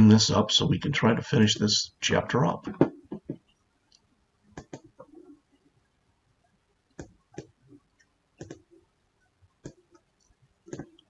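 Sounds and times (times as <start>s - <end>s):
computer mouse clicks: 4.6s - 4.9s, 8.4s - 8.7s.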